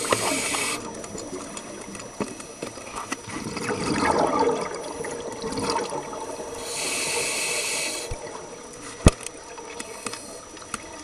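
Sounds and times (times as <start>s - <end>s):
regulator inhale hiss: 0.0s - 1.0s, 6.5s - 9.0s, 9.8s - 10.6s
exhaled bubbles gurgling: 0.0s - 11.0s.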